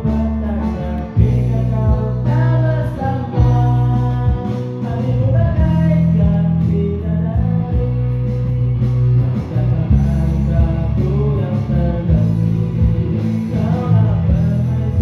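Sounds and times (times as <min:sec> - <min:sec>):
amplified guitar: 0:00.0 - 0:15.0
bass line: 0:00.0 - 0:15.0
man singing: 0:00.0 - 0:15.0.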